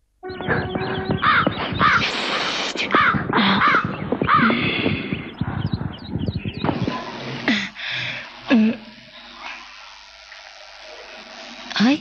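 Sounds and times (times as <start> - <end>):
noisy background: 0.0 - 12.0
harsh bird calls: 0.2 - 7.5.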